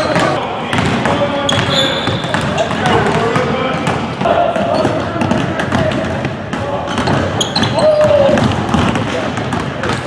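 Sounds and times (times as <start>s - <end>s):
basketballs bouncing on wooden floor: 0.0s - 10.0s.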